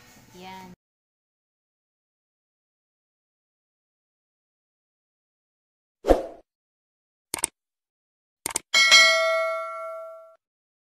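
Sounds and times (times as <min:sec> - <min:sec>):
bright bell ding: 0:08.8 - 0:10.4.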